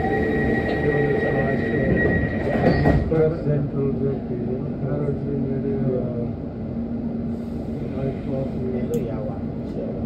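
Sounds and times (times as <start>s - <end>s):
train rumble: 0.0s - 10.0s.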